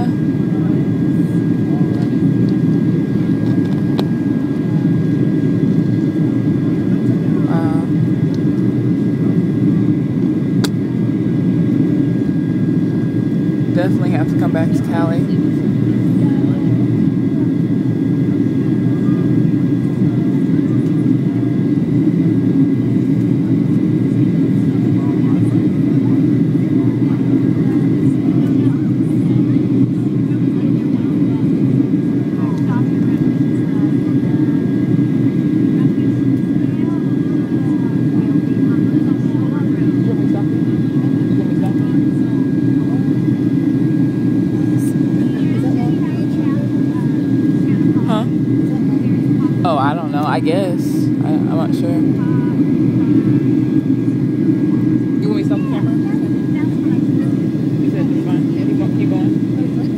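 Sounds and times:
jet engine rumble and rushing air: 0.0s - 59.9s.

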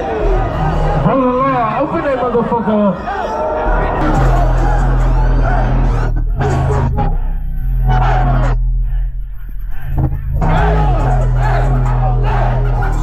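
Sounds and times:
crowd shouting and yelling: 0.0s - 13.0s
rap music over sound system: 0.0s - 13.0s
deep bass notes: 3.4s - 13.0s.

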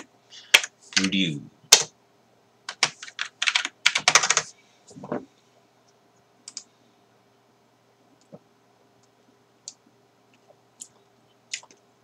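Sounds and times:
keyboard typing: 2.7s - 4.5s, 6.5s - 6.7s.

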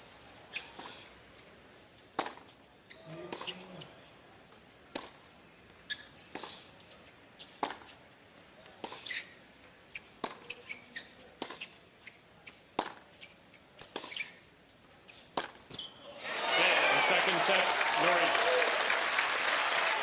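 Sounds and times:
tennis ball bouncing: 2.1s - 2.5s, 4.9s - 5.3s, 7.4s - 8.0s, 9.9s - 13.2s, 15.1s - 15.9s
racquet striking tennis ball: 15.3s - 15.7s
crowd applause and cheering: 16.1s - 20.0s.

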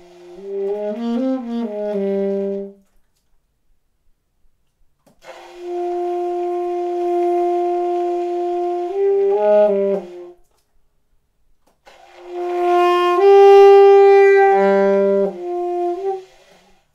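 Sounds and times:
alto saxophone: 0.0s - 3.0s, 5.2s - 10.5s, 11.8s - 16.9s.

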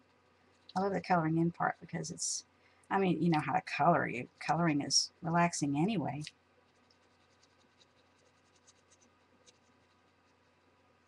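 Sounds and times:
pen scratching on paper: 6.7s - 10.6s.

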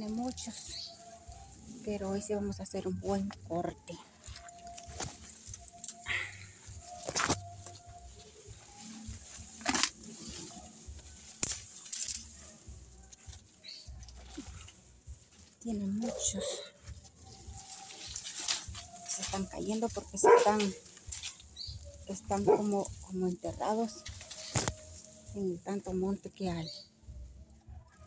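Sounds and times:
chili plants rustling and snapping: 0.0s - 27.0s.

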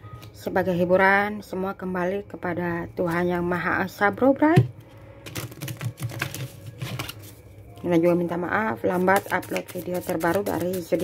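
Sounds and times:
cards being riffle-shuffled: 5.3s - 7.4s, 9.0s - 11.0s.

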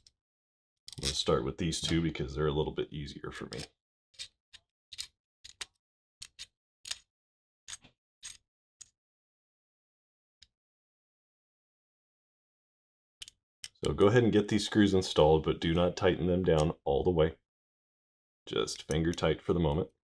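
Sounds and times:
small metal clicks: 0.9s - 1.2s, 3.5s - 7.1s, 7.7s - 9.0s, 13.2s - 13.9s.

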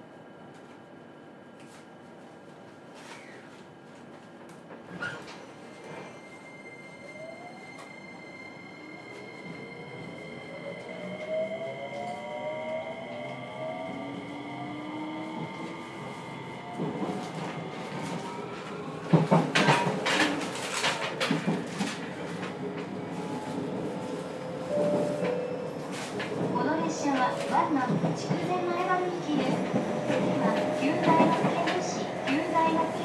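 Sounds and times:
train rolling noise: 1.6s - 33.0s.

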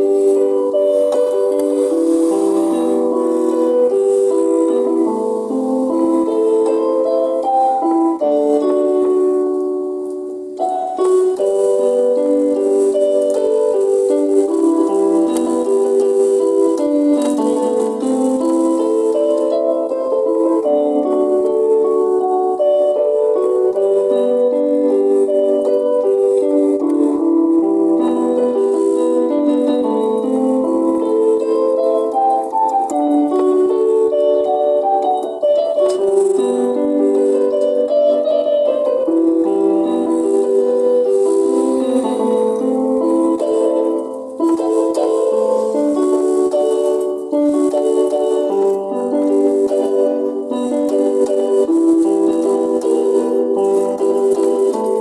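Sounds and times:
organ-like keyboard melody: 0.0s - 55.0s.

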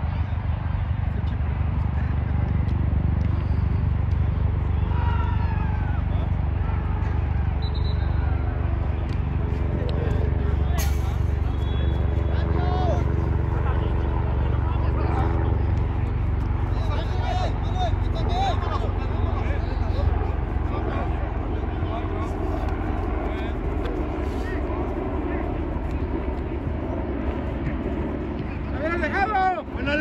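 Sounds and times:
distant players shouting: 4.3s - 30.0s.

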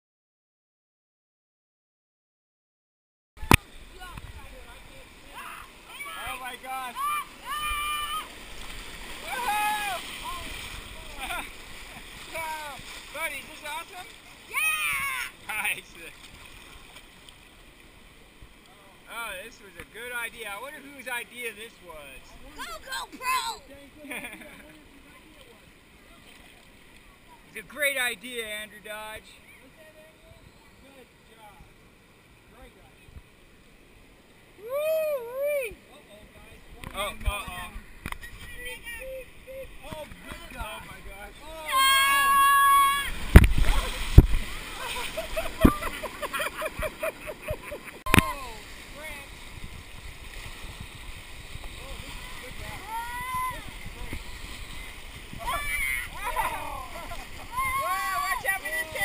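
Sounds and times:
river rushing and splashing: 3.4s - 24.0s, 35.7s - 59.0s
people yelling excitedly: 5.3s - 8.4s, 9.2s - 10.6s, 14.5s - 15.4s, 41.5s - 43.2s, 52.7s - 53.7s, 55.4s - 59.0s.

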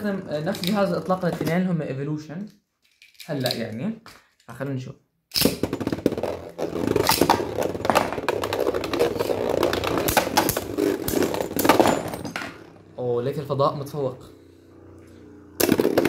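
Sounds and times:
spinning tops clashing and clicking: 5.3s - 6.4s.

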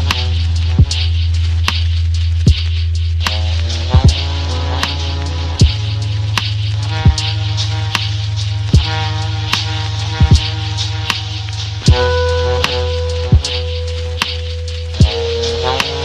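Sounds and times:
ticking hi-hats: 0.0s - 16.0s
kick drum: 0.8s - 1.0s, 2.4s - 2.8s, 3.9s - 4.3s, 5.6s - 5.9s, 8.7s - 9.0s, 10.2s - 10.6s, 11.9s - 12.1s
soft chords: 3.6s - 16.0s.

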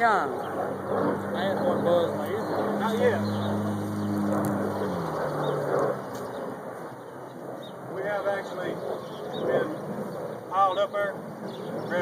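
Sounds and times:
passing vehicle engine hum: 0.0s - 7.1s.

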